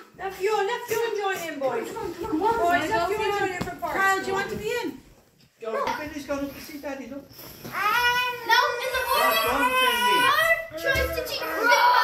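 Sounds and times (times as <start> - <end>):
young children calling out: 7.7 - 12.0.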